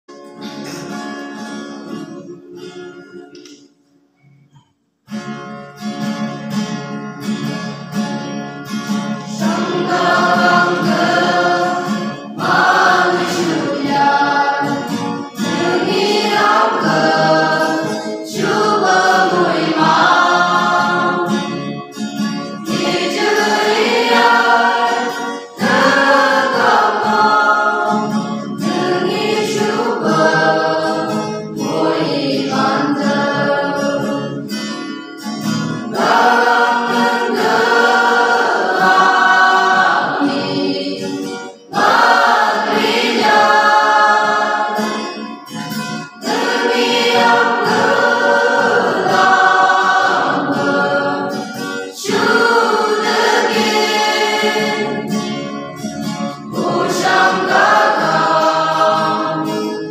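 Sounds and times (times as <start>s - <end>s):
strummed acoustic guitars: 0.1s - 59.9s
mixed choir singing a hymn: 8.8s - 59.9s.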